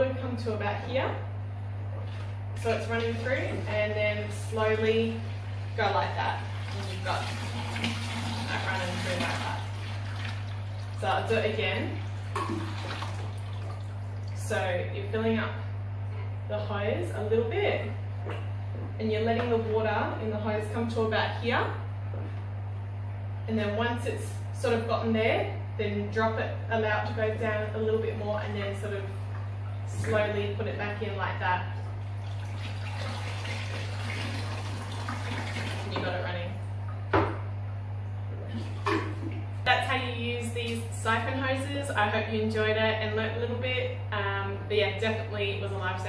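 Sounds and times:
steady low hum: 0.0s - 46.0s
water splashing and sloshing: 1.8s - 14.7s, 28.4s - 39.7s.

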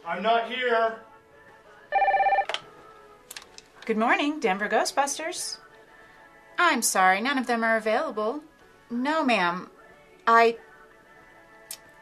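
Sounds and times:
electronic telephone ringing: 1.9s - 2.6s.

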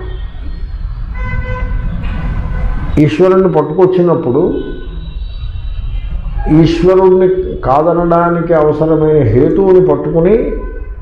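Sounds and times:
held horn-like tone: 0.0s - 7.0s.

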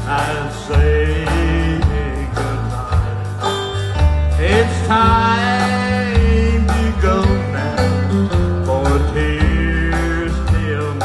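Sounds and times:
live country band music: 0.0s - 11.0s
strummed acoustic guitar: 0.0s - 11.0s.

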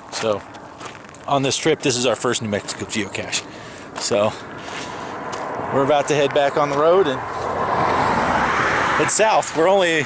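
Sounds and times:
car driving past: 4.6s - 10.0s.

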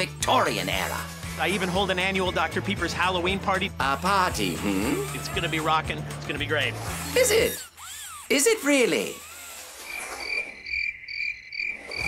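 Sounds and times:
cricket chirps: 9.8s - 12.0s.

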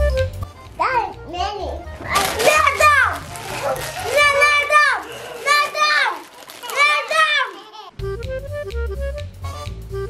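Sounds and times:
children squabbling and shrieking: 2.0s - 8.0s.

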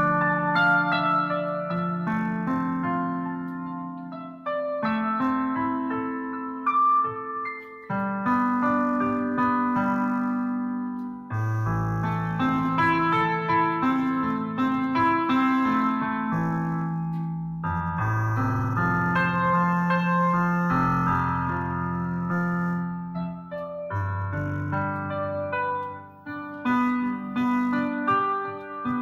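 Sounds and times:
keyboard playing piano chords: 0.0s - 29.0s.

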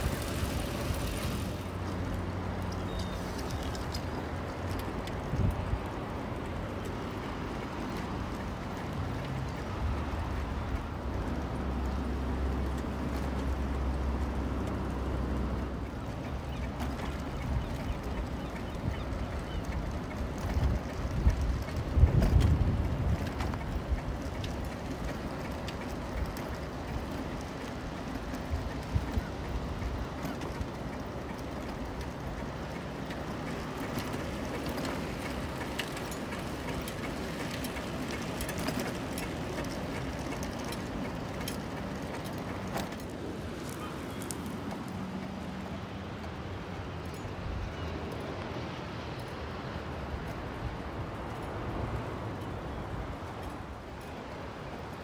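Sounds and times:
bicycle rolling on pavement: 0.0s - 55.0s
wind buffeting microphone: 0.0s - 55.0s.

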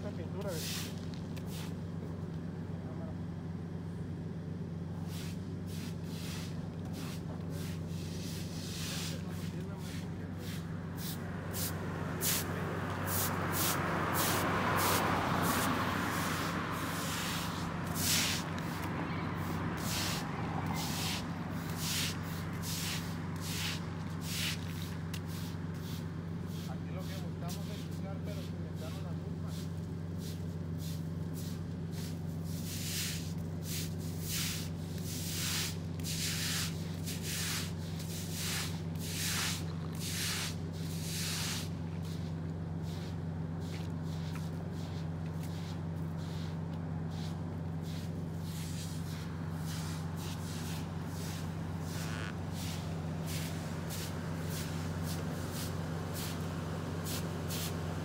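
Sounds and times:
steady low hum: 0.0s - 58.0s
short hissing rustles: 0.6s - 1.8s, 5.0s - 26.7s, 29.5s - 57.9s
vehicle passing: 5.0s - 58.0s.

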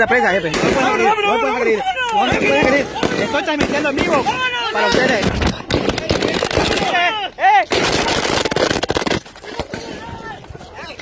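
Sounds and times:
gunshots: 0.5s - 1.1s, 2.2s - 7.1s, 7.7s - 10.0s.

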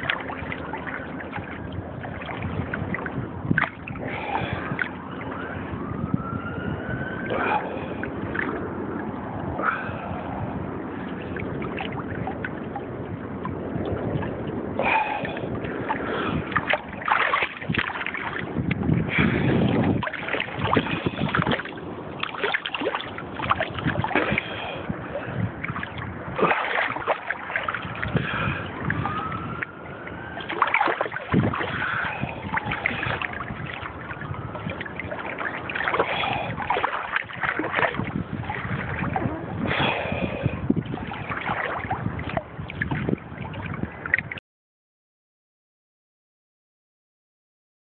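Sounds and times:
small waves sloshing and slapping: 0.0s - 44.4s
water splashes: 0.0s - 44.4s.

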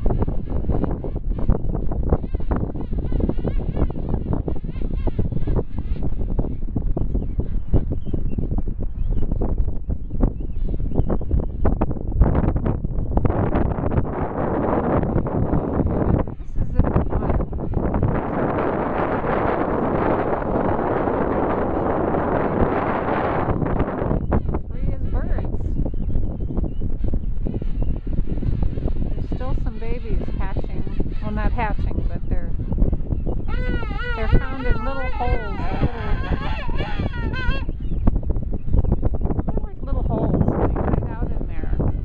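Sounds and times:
wind buffeting microphone: 0.0s - 42.0s
penguins trumpet calling: 33.4s - 37.8s.

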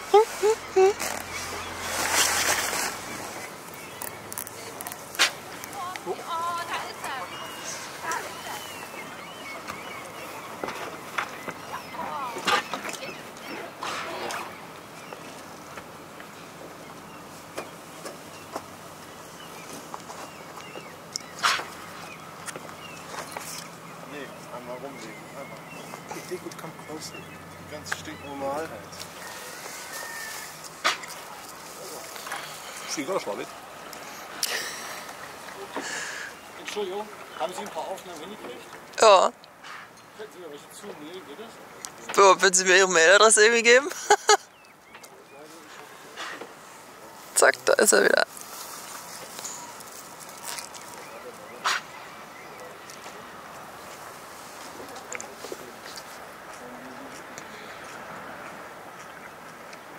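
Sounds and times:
soft hiss of water and air: 29.2s - 37.3s, 45.4s - 58.7s.

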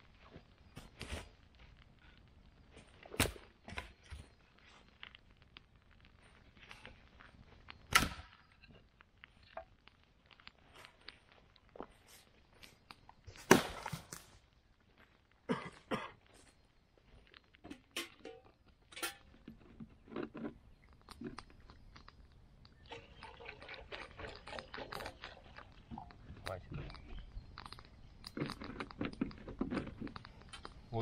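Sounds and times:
footsteps on forest litter: 0.0s - 7.9s, 10.0s - 17.5s
dry branches cracking: 0.3s - 15.4s.

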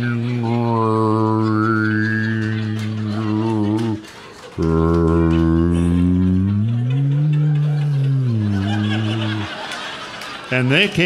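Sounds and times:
man throat singing drone: 0.0s - 4.0s, 4.6s - 9.7s.

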